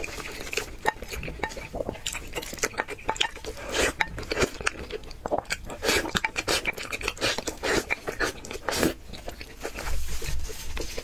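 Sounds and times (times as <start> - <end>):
wet chewing mouth clicks: 0.0 - 10.0
slurping sauce from a spoon: 0.0 - 11.0.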